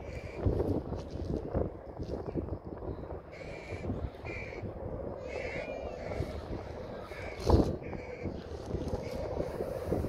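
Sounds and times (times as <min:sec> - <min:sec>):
wind rumble on microphone: 0:00.0 - 0:10.0
bird calling: 0:03.3 - 0:04.6, 0:05.2 - 0:08.4.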